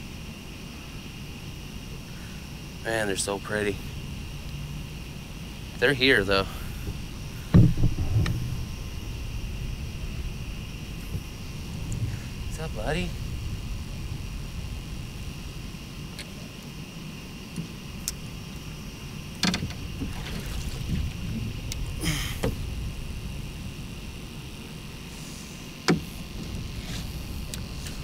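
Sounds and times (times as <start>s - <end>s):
low steady rumble: 0.0s - 28.0s
gear knocking against boat: 6.7s - 14.8s, 19.4s - 23.4s
water splashing: 17.4s - 28.0s.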